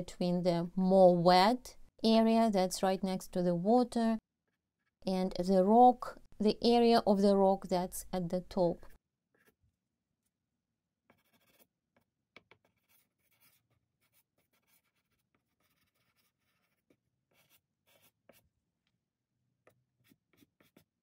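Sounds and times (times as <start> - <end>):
pastel scratching on paper: 9.3 - 9.7, 11.1 - 18.6, 19.6 - 21.0.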